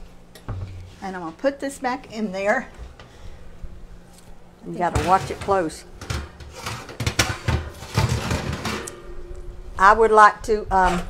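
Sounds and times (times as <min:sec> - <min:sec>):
oven rack and pan clattering: 0:04.7 - 0:10.3.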